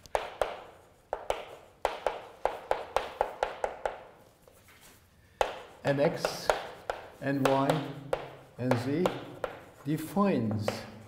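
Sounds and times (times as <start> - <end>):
chalk tapping on blackboard: 0.0 - 11.0.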